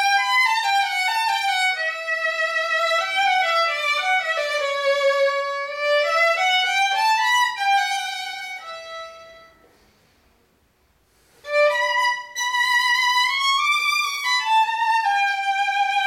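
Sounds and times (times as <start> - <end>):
bowed violin melody: 0.0 - 9.6, 11.4 - 16.0.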